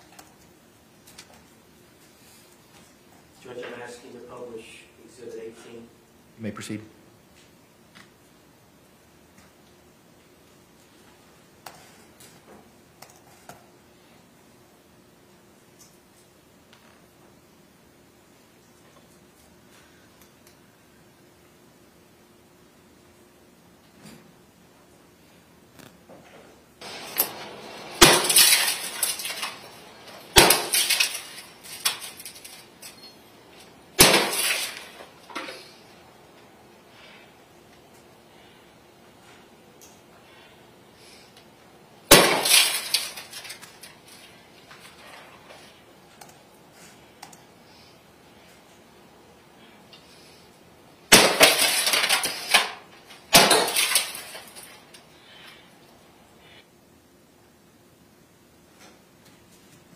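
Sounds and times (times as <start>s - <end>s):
glass breaking and pieces falling: 26.8s - 35.9s, 42.1s - 45.7s, 51.1s - 55.5s
bat smashing a television: 26.8s - 36.0s, 42.0s - 45.7s, 51.1s - 55.4s.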